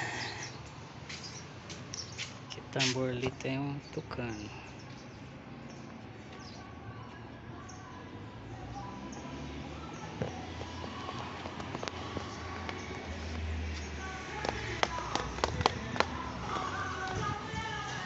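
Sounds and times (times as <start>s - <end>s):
voices: 5.6s - 18.0s
music: 6.5s - 18.0s
footsteps on stone stairs: 10.0s - 17.3s.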